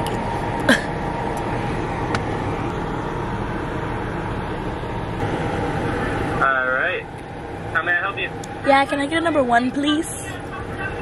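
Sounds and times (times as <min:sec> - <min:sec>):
car running noise from cabin: 0:00.0 - 0:11.0.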